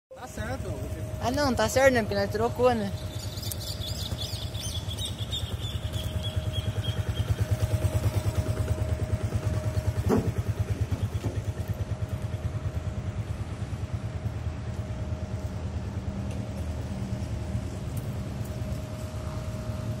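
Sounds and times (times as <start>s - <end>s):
motorcycle engine idling: 0.2s - 20.0s
engine knock: 4.1s - 14.2s.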